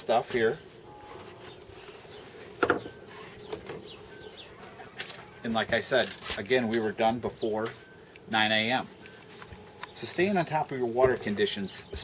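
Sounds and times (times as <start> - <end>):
fishing rods handling noise: 4.9 - 5.3, 5.9 - 6.9.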